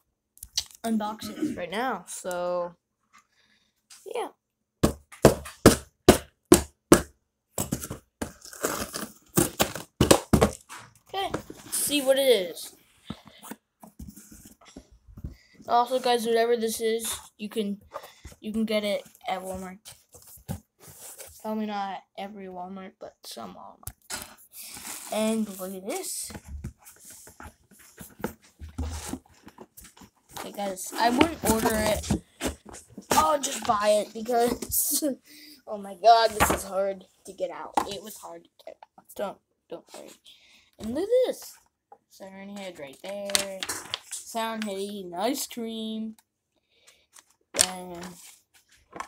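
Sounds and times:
cardboard box tearing: 7.6 - 10.5
cardboard crinkling: 7.6 - 11.9, 24.1 - 34.6.

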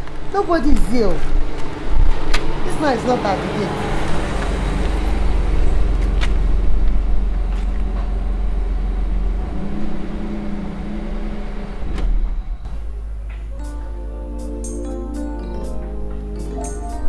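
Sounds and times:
car driving up and stopping: 3.8 - 14.0.

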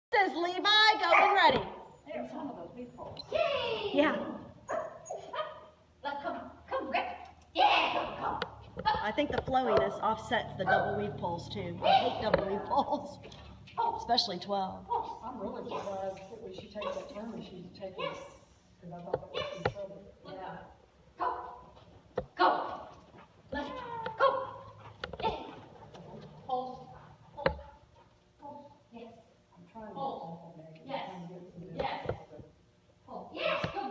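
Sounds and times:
dog barking: 1.1 - 1.5, 4.7 - 5.7, 11.8 - 12.2, 13.8 - 14.1.

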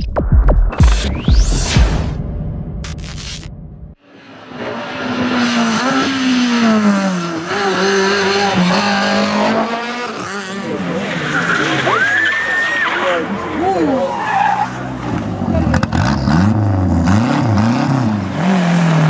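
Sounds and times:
rally car engines revving: 4.2 - 19.0
high tyre squeal: 10.0 - 15.0.

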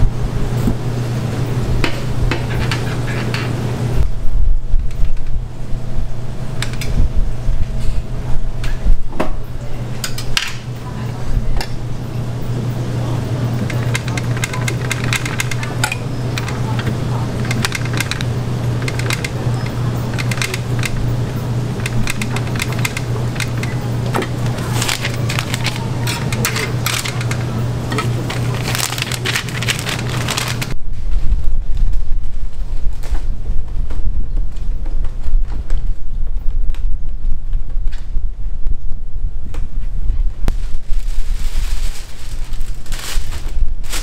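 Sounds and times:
equipment humming: 0.0 - 44.0
metal utensils clinking: 13.6 - 21.0, 21.8 - 30.8.

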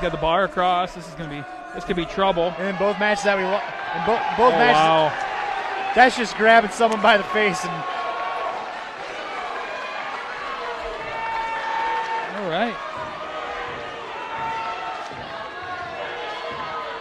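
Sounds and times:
crowd shouting: 0.0 - 17.0.

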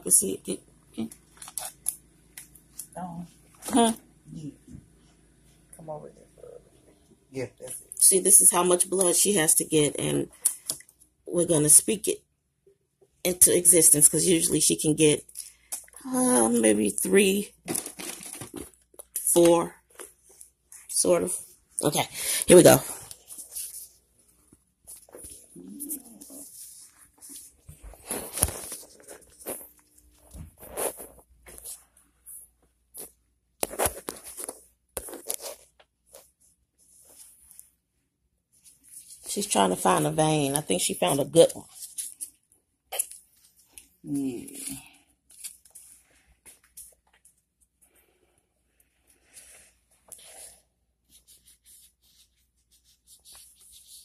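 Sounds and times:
gloved hand rubbing skin: 49.1 - 54.0.

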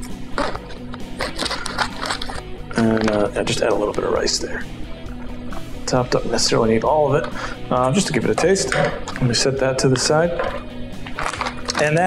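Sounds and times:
scissors cutting foil pouch: 0.0 - 3.3, 11.1 - 11.8
background music: 0.0 - 12.0.

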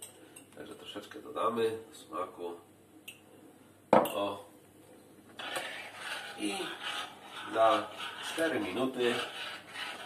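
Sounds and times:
metal spoon scraping a pot: 5.4 - 10.0.

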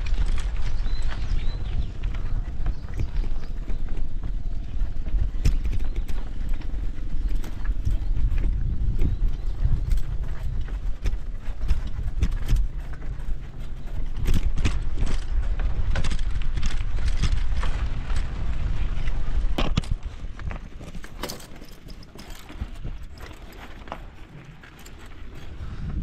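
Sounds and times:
bicycle rattling over bumps: 0.0 - 26.0
wind and tyre rumble: 0.0 - 26.0.

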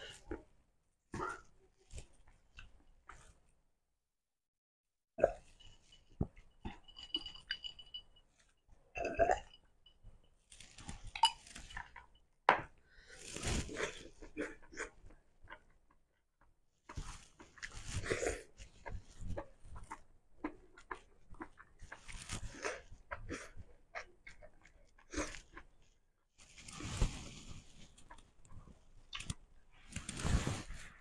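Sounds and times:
chewing and mouth smacks: 18.8 - 25.7.

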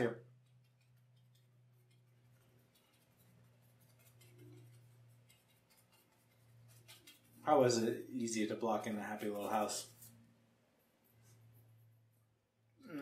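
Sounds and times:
paintbrush scratching on canvas: 0.5 - 7.7.

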